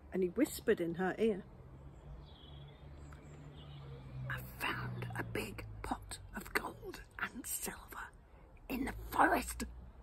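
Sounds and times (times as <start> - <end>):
woman whispering: 4.3 - 9.6.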